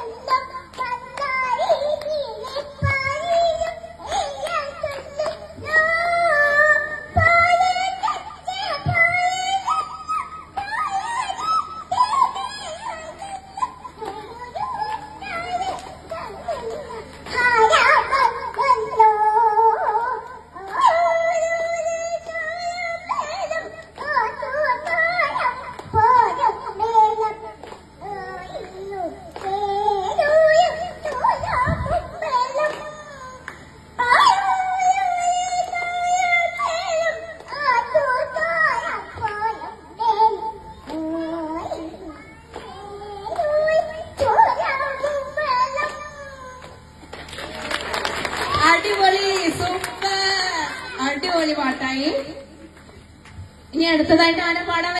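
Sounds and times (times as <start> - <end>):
toddler singing into microphone: 0.0 - 46.9.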